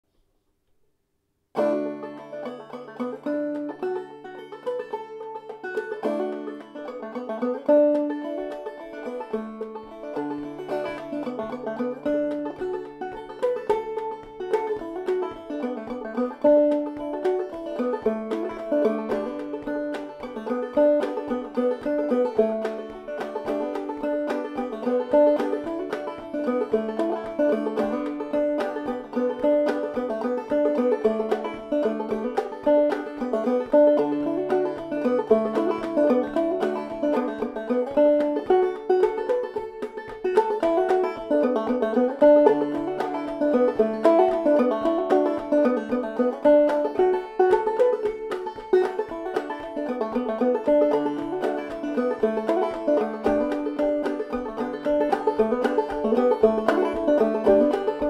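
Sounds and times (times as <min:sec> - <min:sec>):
clawhammer banjo playing: 0:01.6 - 0:58.0.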